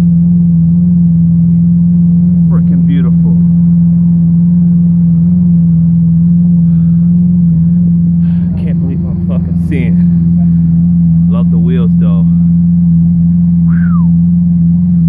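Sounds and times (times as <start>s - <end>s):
car engine idling: 0.0s - 15.0s
brief voices: 13.7s - 14.2s.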